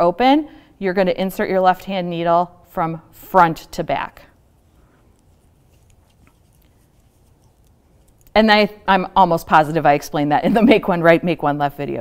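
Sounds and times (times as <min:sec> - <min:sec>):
knitting needles ticking: 0:04.3 - 0:08.6.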